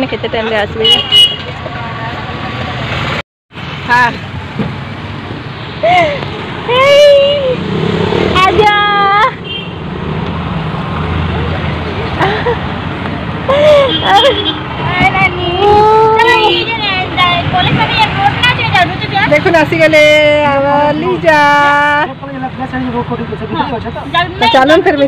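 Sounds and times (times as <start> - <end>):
low rumble of street traffic: 0.0 - 25.0
people talking and calling out: 5.8 - 9.5, 11.3 - 25.0.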